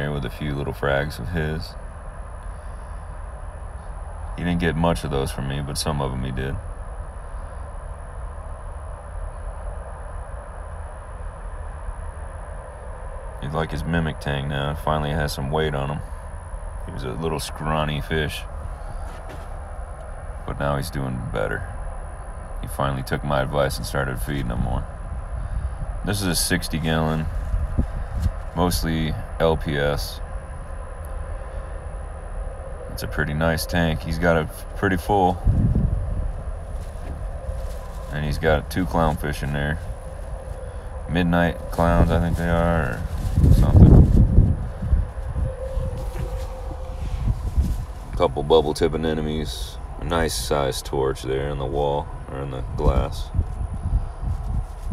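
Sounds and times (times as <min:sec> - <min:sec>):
aquarium pumps rumbling: 0:03.0 - 0:52.5.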